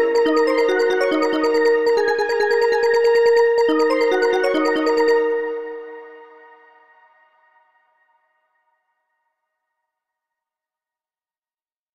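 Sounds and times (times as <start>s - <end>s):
faint synthesized chord: 0.0s - 7.7s.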